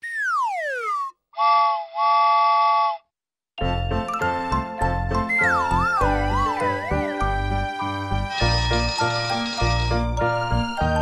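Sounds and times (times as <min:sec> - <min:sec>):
whistle gliding down in pitch: 0:00.0 - 0:03.0
children's christmas music: 0:03.6 - 0:11.0.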